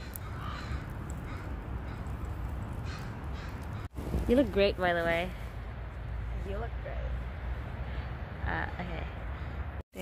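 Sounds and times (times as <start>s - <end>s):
crows cawing: 0.0s - 4.0s, 9.1s - 9.8s.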